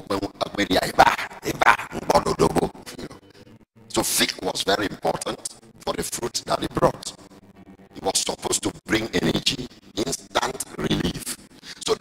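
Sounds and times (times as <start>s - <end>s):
man speaking into microphone: 0.0s - 3.2s, 3.9s - 7.2s, 8.0s - 12.0s.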